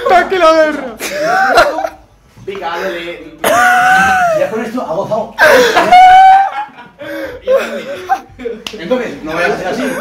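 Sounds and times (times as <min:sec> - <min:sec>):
young men's indistinct voices: 0:00.0 - 0:10.0.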